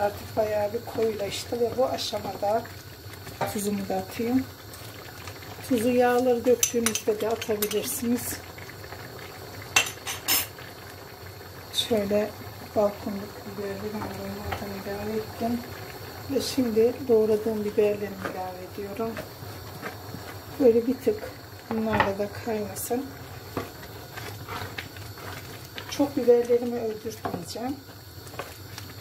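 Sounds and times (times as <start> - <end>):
sauce simmering in a pot: 0.0 - 29.0
wooden spoon scraping a pot: 23.4 - 26.1.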